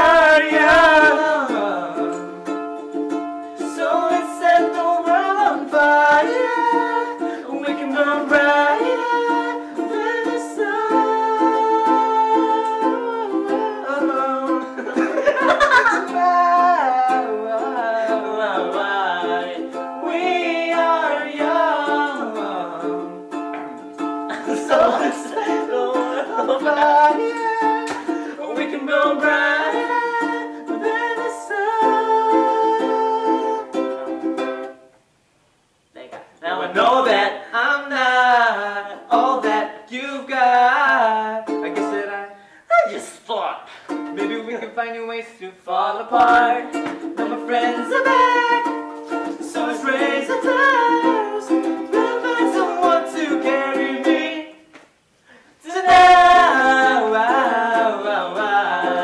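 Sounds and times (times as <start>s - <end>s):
voices singing along: 0.0s - 2.6s, 3.6s - 34.6s, 36.4s - 43.3s, 45.6s - 54.8s, 55.6s - 59.0s
ukulele strummed in chords: 0.0s - 34.8s, 39.1s - 39.8s, 40.8s - 42.2s, 43.9s - 44.5s, 46.1s - 54.7s, 55.8s - 59.0s.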